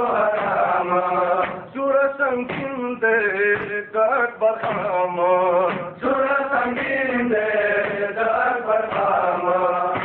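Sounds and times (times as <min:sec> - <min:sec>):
voices chanting a lament: 0:00.0 - 0:10.0.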